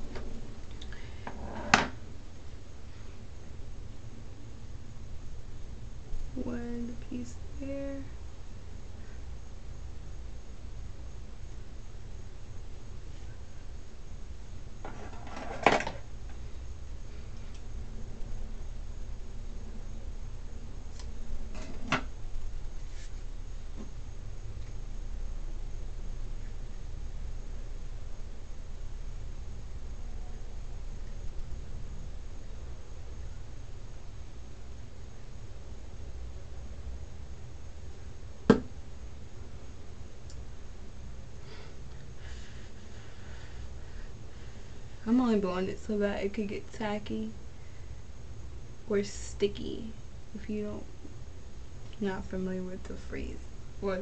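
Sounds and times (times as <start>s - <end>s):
steady low hum: 0.0s - 54.0s.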